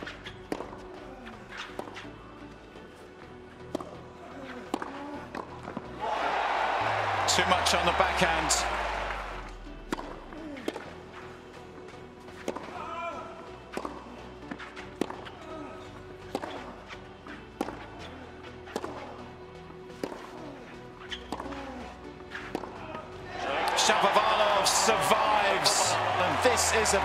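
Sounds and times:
rackets striking tennis balls: 0:00.0 - 0:02.1, 0:03.6 - 0:06.0, 0:09.8 - 0:13.0, 0:13.6 - 0:15.6, 0:16.2 - 0:19.2, 0:19.9 - 0:27.0
tennis balls bouncing: 0:00.0 - 0:02.2, 0:03.6 - 0:04.0, 0:04.6 - 0:06.2, 0:09.8 - 0:12.8, 0:13.6 - 0:19.2, 0:19.9 - 0:27.0.

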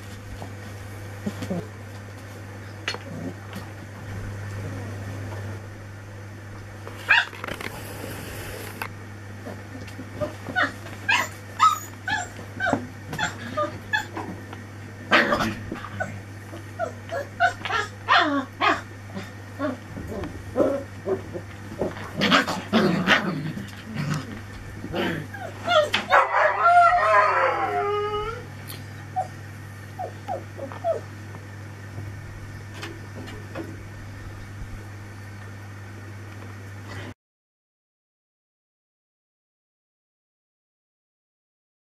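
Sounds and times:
puppies yipping and whimpering: 0:10.2 - 0:14.3, 0:15.1 - 0:21.5, 0:25.2 - 0:31.2.

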